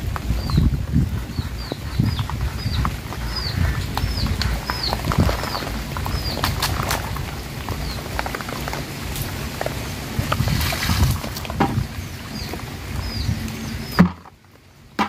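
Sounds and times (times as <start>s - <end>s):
fish slapping on wet tarp: 8.2s - 11.6s.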